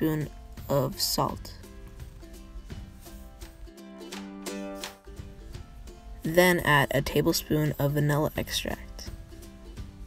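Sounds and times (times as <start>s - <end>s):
plucked-string background music: 0.0s - 10.0s.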